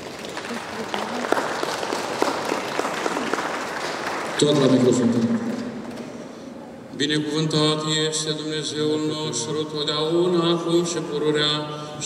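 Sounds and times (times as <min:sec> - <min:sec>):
individual hand claps: 0:00.0 - 0:04.5
audience applauding: 0:00.0 - 0:06.1.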